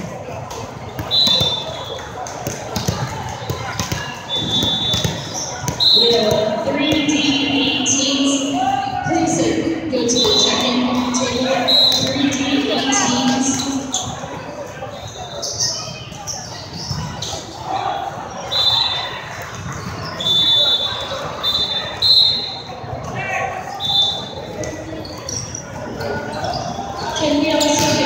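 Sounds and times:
players' footwork on court: 0.0s - 7.2s.

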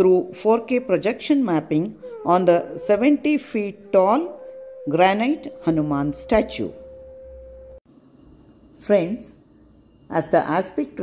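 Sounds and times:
steady single-pitch hum: 0.0s - 11.0s.

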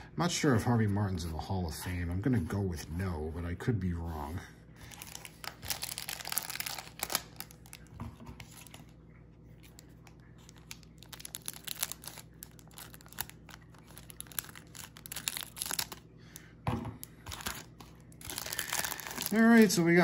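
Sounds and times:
cellophane crinkling and tearing: 4.8s - 16.4s, 17.0s - 20.0s.

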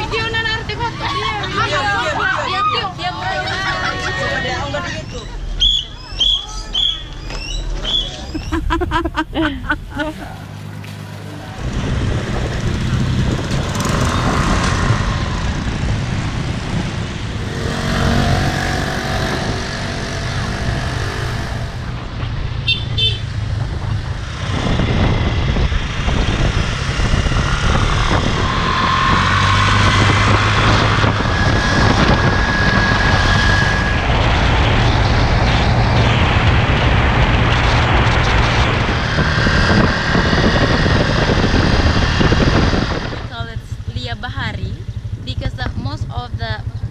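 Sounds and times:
passing traffic: 0.0s - 46.9s
scooter engine hum: 0.0s - 46.9s
wind on microphone: 3.4s - 10.2s, 11.5s - 22.6s, 23.2s - 46.9s.

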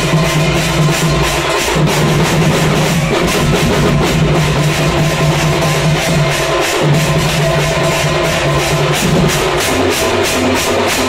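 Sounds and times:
drums beaten with sticks: 0.0s - 11.0s
hand cymbals clashing: 0.0s - 11.0s.

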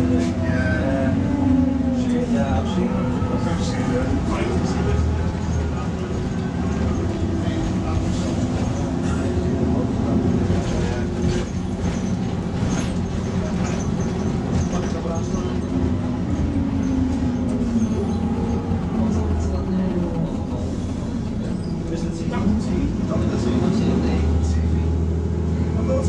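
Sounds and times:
bus diesel engine running: 0.0s - 26.0s.

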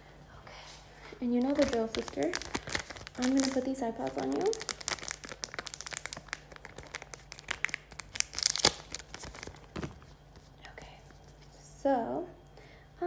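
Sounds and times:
paper packet crinkling and tearing: 1.3s - 10.1s.

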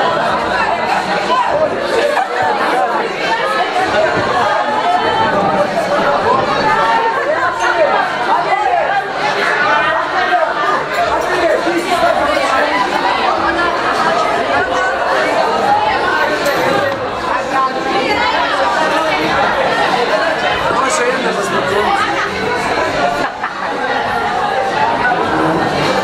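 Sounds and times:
babble of overlapping voices: 0.0s - 26.0s.

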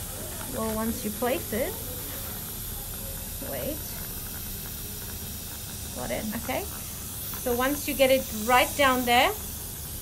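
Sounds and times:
dental suction hissing: 0.0s - 10.0s.

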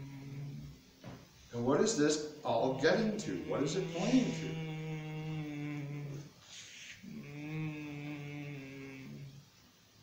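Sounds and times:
man humming low notes: 0.0s - 0.9s, 2.9s - 9.6s.

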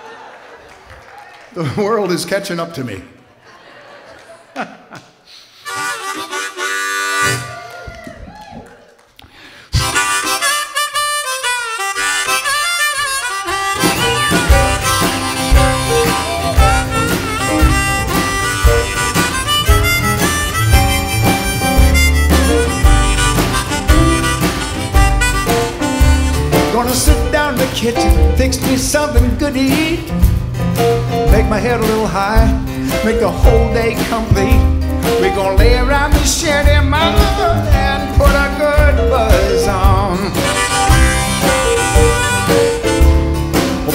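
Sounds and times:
harmonica: 5.3s - 7.6s, 9.6s - 28.5s, 36.6s - 43.9s
acoustic guitar: 9.8s - 43.9s
drums: 13.2s - 43.9s
upright bass: 13.5s - 43.9s.

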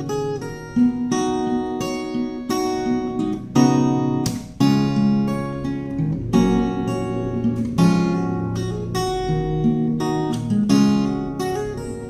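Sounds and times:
acoustic guitar chords ringing: 0.0s - 12.0s.

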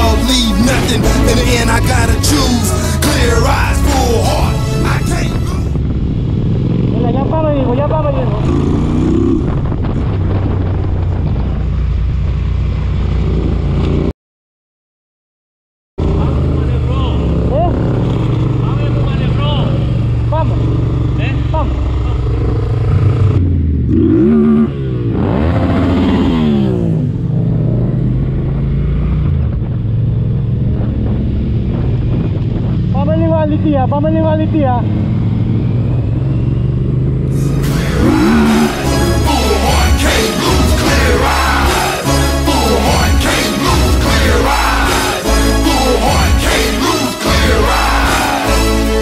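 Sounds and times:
motorcycle engine running: 0.0s - 14.1s, 16.0s - 46.6s.

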